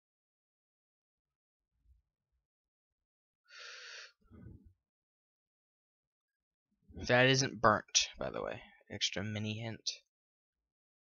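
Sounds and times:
person inhaling sharply: 3.5s - 4.2s.

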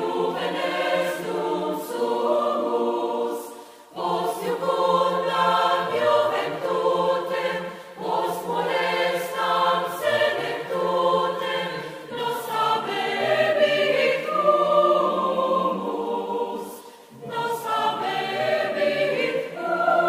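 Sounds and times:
choir singing: 0.0s - 20.0s.

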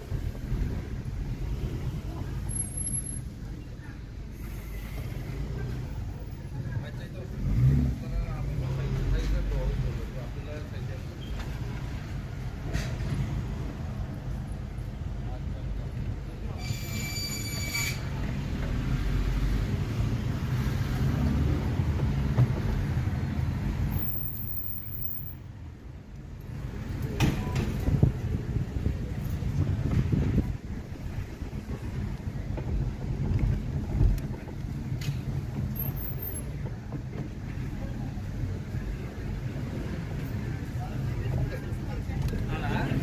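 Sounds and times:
car engine and tyres rumbling: 0.0s - 16.6s, 17.9s - 43.0s.

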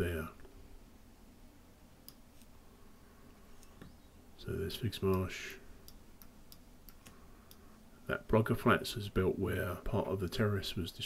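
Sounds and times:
computer mouse clicks: 2.0s - 2.5s, 5.8s - 7.6s.

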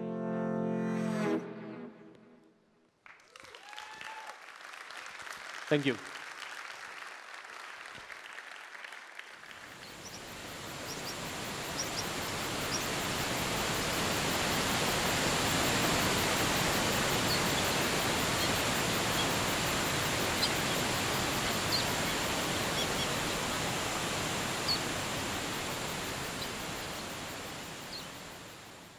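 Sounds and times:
waterfall rushing: 9.6s - 28.9s
high bird chirps: 17.0s - 24.9s.

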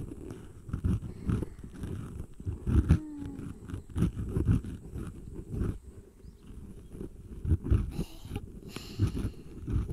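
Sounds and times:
voiced cat-like purr: 0.0s - 9.9s.

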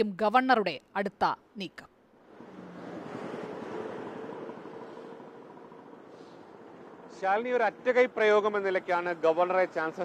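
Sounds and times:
vehicle passing: 2.1s - 10.0s.

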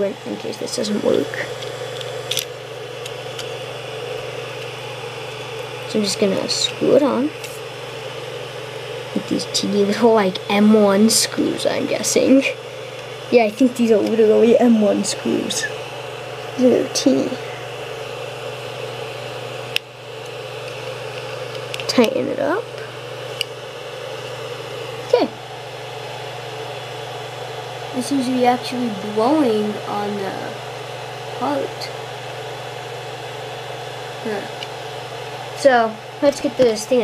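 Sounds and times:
small cooling fan whirring: 0.0s - 37.0s.

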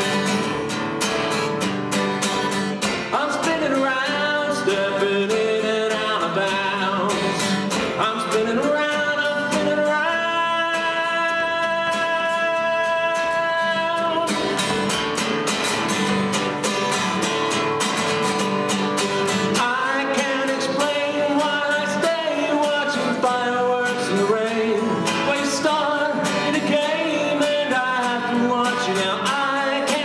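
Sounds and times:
acoustic guitar strumming: 0.0s - 30.0s
man singing: 3.0s - 14.9s, 19.4s - 30.0s.

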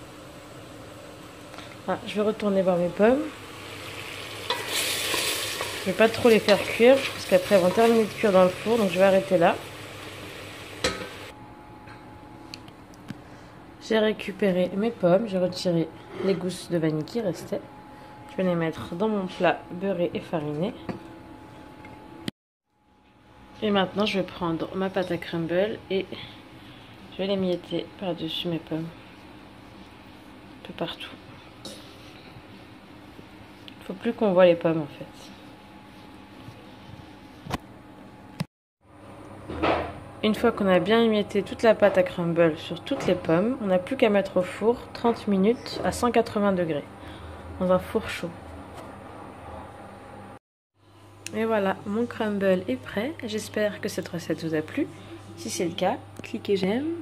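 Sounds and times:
apples sizzling in butter: 1.6s - 11.3s.

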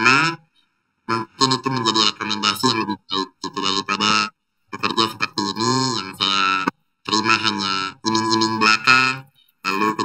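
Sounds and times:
person talking: 0.0s - 0.5s, 1.1s - 10.0s.

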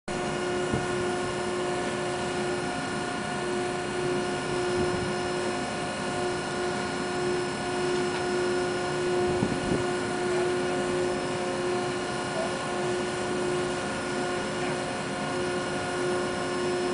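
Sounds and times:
ship machinery humming: 0.1s - 16.9s.

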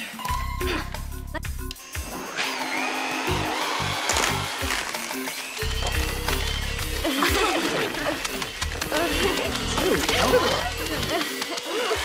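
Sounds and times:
comedy music with bass beat: 0.3s - 2.2s, 3.3s - 12.0s
electric hand mixer whirring: 1.8s - 12.0s.

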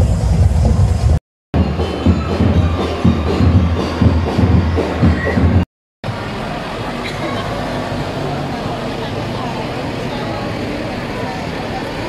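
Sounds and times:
tractor engines running: 0.0s - 12.0s
spectators chattering: 1.6s - 12.0s.

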